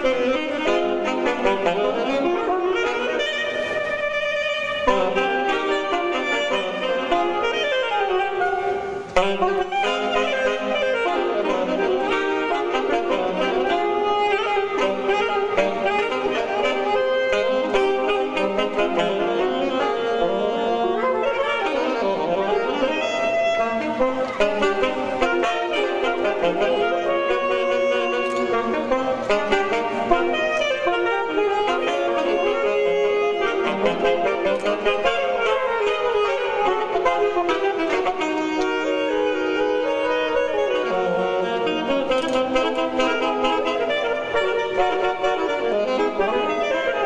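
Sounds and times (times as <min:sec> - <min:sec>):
alto saxophones playing in harmony: 0:00.0 - 0:47.0.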